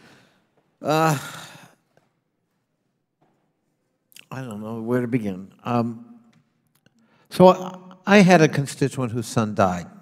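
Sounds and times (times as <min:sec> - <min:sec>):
man sighing: 0:00.8 - 0:01.8.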